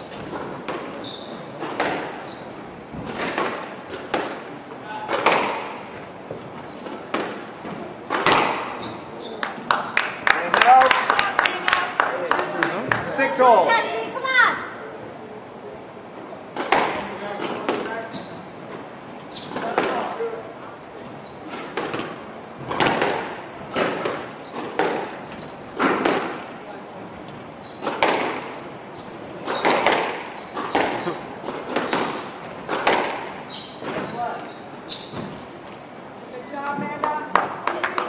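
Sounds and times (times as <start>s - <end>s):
squash ball struck by rackets: 0.0s - 1.0s, 1.6s - 2.2s, 2.9s - 9.0s, 16.5s - 17.9s, 19.5s - 20.2s, 21.5s - 26.6s, 27.7s - 34.2s
shoes squeaking on hardwood: 0.0s - 9.7s, 17.4s - 37.2s
ball cracking off walls: 5.1s - 5.8s, 7.0s - 8.8s, 16.6s - 17.8s, 21.5s - 25.2s, 27.8s - 28.5s, 29.4s - 34.1s.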